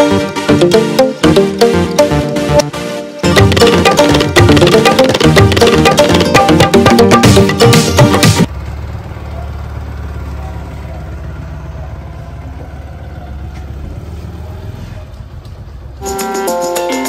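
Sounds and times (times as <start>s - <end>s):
music: 0.0s - 8.5s, 16.0s - 17.0s
motorcycle engine rumbling: 3.3s - 16.0s.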